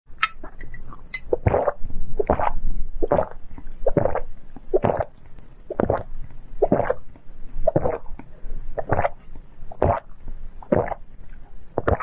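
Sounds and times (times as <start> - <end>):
gulping through a straw: 0.9 - 8.2, 8.8 - 9.2, 9.8 - 11.0, 11.8 - 12.0.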